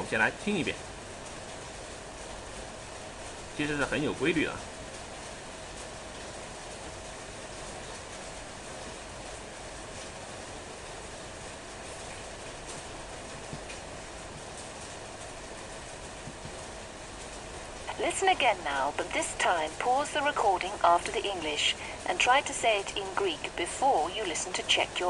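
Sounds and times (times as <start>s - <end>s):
faint steady hum: 0.0s - 25.0s
background hiss: 6.6s - 25.0s.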